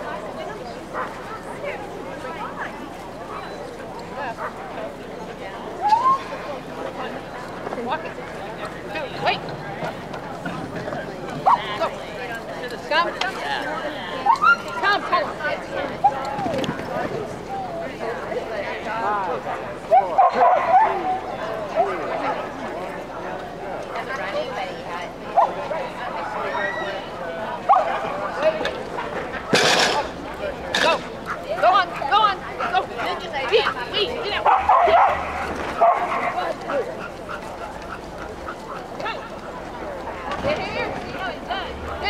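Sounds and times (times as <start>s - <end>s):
voices in background: 0.0s - 42.0s
dog barking: 19.9s - 21.1s, 27.7s - 28.0s, 34.4s - 36.4s.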